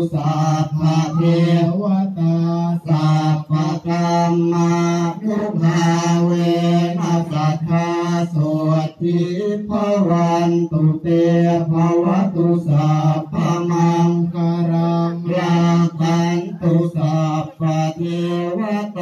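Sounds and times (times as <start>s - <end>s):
voices chanting: 0.0s - 19.0s.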